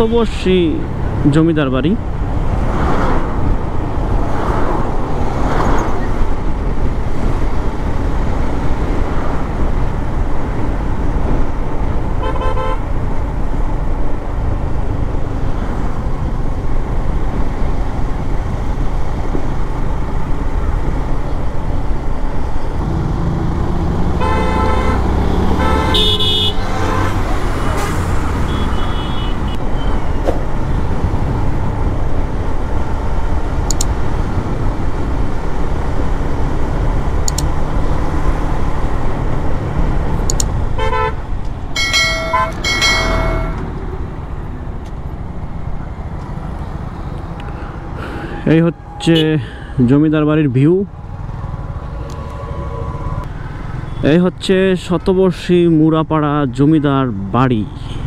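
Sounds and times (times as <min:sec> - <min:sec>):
vehicle horns honking: 0:12.2 - 0:12.9, 0:24.2 - 0:30.2, 0:40.8 - 0:41.2, 0:41.8 - 0:43.7.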